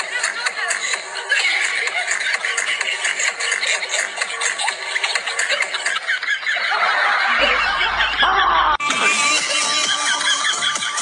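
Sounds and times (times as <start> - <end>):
background music: 0.0 - 11.0
person snickering and chuckling: 0.0 - 11.0.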